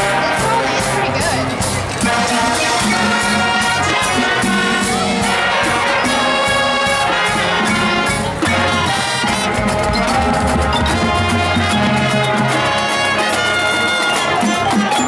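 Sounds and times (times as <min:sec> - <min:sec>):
brass playing: 0:00.0 - 0:15.0
marching snare and bass drums: 0:00.0 - 0:15.0
low bass part: 0:09.2 - 0:12.6.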